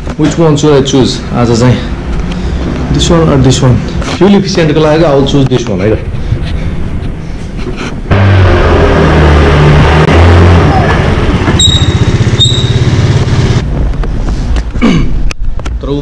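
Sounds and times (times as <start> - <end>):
scooter engine pulling away: 8.1 - 13.6
short high beeps: 11.6 - 13.0.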